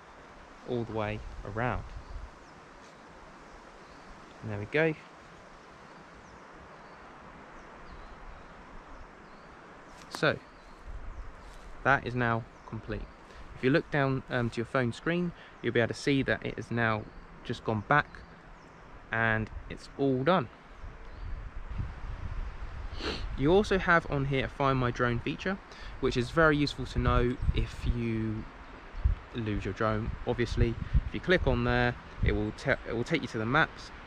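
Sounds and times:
wind rumbling on microphone: 0.0s - 4.7s, 10.5s - 14.7s, 18.6s - 20.0s, 20.7s - 34.0s
woodland ambience: 0.0s - 34.0s
soft high bird chirps: 1.9s - 13.6s
faint rustling: 9.4s - 11.9s.

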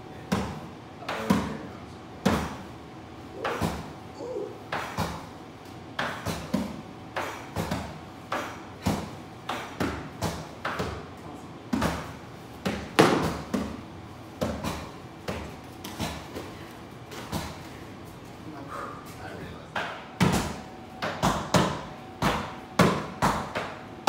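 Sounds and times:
punches thudding on pads: 0.3s - 1.6s, 2.2s - 2.6s, 3.4s - 4.0s, 4.7s - 5.3s, 6.0s - 11.1s, 11.7s - 13.8s, 14.4s - 16.5s, 19.8s - 23.8s.

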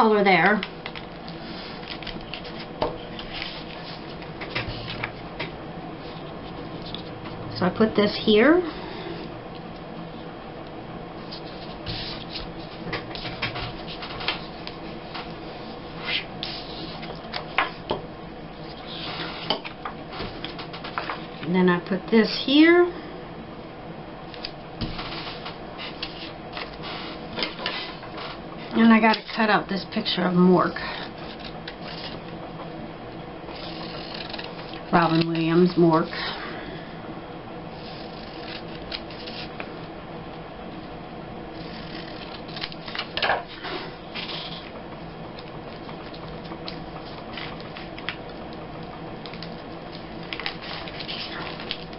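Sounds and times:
faint steady hum: 0.0s - 51.9s
paper rustling: 0.9s - 5.2s, 25.0s - 28.4s, 37.8s - 39.6s, 49.2s - 51.9s.

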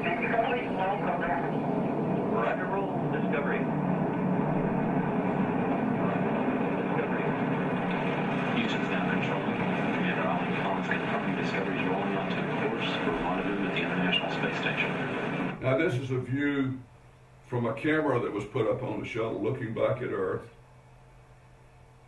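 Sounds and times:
rocket engine roar over loudspeakers: 0.0s - 15.6s
faint voices: 5.8s - 15.6s.

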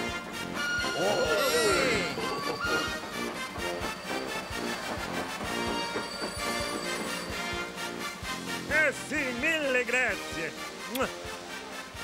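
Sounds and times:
brass band music: 0.0s - 6.2s, 6.8s - 12.0s.

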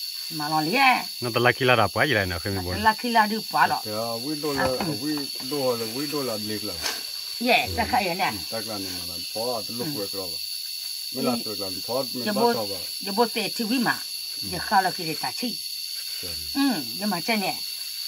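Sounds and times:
steady high-pitched hiss: 0.0s - 18.0s
people talking: 0.3s - 10.4s, 11.2s - 15.6s, 16.2s - 17.6s.

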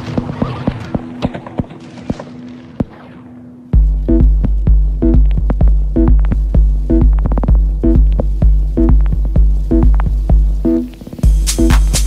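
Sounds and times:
kick drum with deep bass: 3.8s - 12.0s.

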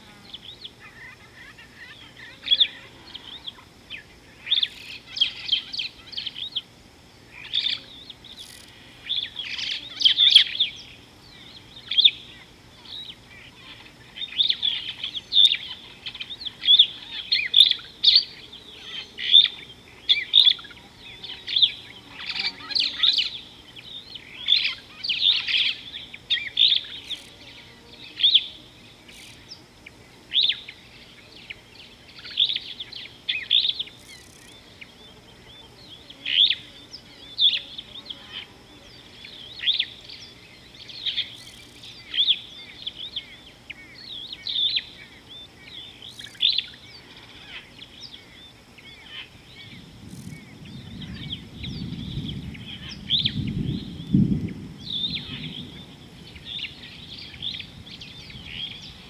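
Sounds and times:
birds chirping and singing: 0.0s - 59.0s.

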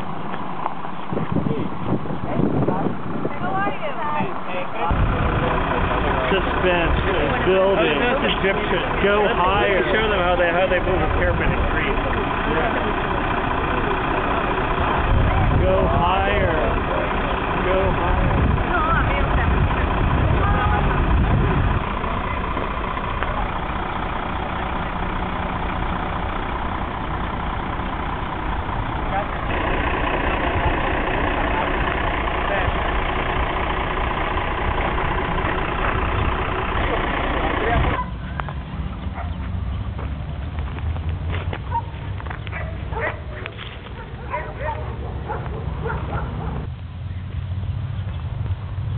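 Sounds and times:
diesel crane engine running: 0.0s - 48.9s
people's voices: 1.2s - 39.2s.

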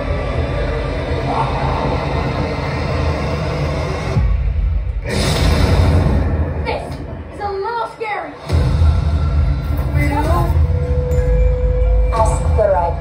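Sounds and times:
heavy low rumble: 0.0s - 7.6s
dark scary music over loudspeakers: 0.0s - 13.0s.

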